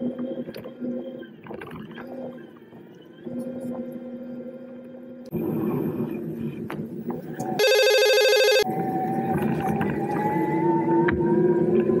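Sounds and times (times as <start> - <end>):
electronic horn beep: 7.6 - 8.7.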